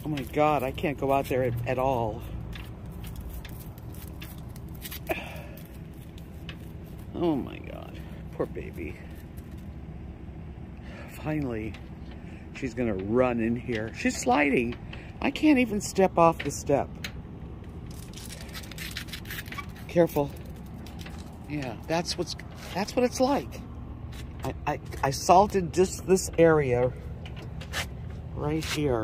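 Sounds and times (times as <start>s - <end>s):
steady low hum: 0.0s - 29.0s.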